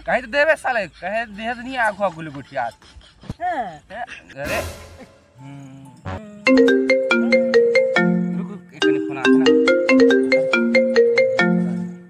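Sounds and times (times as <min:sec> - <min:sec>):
mobile phone ringtone melody: 0:06.5 - 0:12.0.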